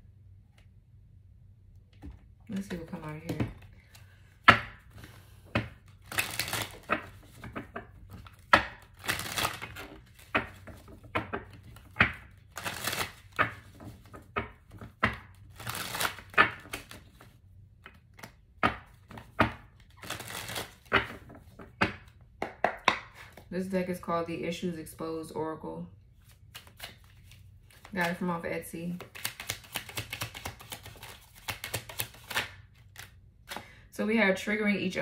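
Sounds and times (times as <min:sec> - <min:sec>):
cards being shuffled: 0:02.5 - 0:22.2, 0:26.2 - 0:33.6.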